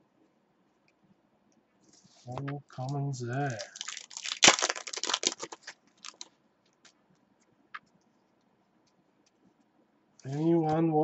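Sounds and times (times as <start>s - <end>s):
foil wrapper tearing and crinkling: 3.5s - 6.3s.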